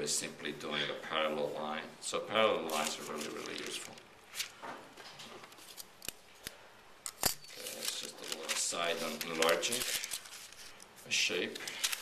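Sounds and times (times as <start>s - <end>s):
paper rustling: 2.6s - 6.1s, 7.5s - 12.0s.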